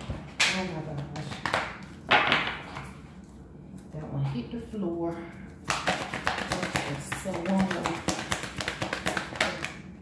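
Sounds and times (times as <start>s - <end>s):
cards being shuffled: 5.7s - 9.8s.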